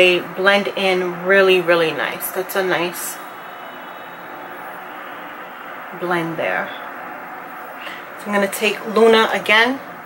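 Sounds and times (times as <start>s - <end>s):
faint high-pitched whine: 0.0s - 10.0s
steady background noise: 0.0s - 10.0s.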